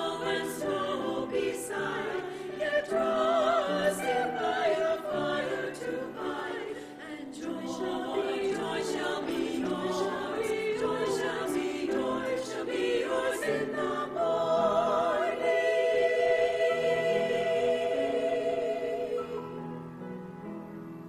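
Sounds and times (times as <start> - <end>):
women's choir singing: 0.0 - 19.8
piano: 0.0 - 21.0.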